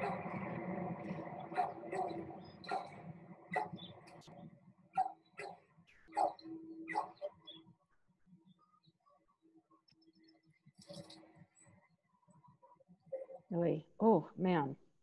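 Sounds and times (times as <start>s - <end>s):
dog barking: 0.0s - 0.4s, 1.5s - 3.9s, 4.9s - 7.4s.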